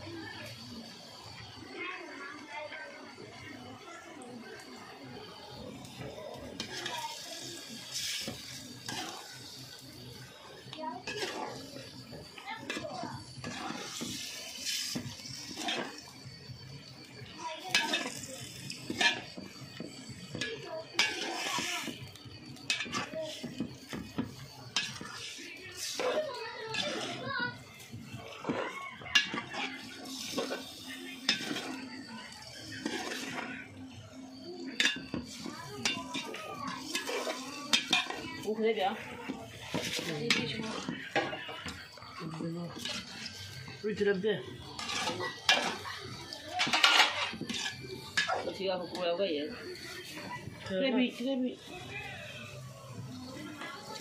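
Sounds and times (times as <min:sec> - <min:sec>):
voices: 0:00.0 - 0:54.0
metal spoon scraping a pot: 0:06.5 - 0:10.2, 0:11.0 - 0:16.1, 0:17.6 - 0:32.0, 0:32.6 - 0:33.8, 0:34.8 - 0:42.1, 0:42.7 - 0:49.0.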